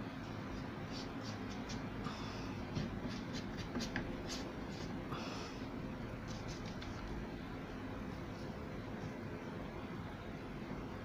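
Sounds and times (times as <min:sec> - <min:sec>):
electric fans: 0:00.0 - 0:11.0
paintbrush scratchy strokes: 0:06.2 - 0:07.1.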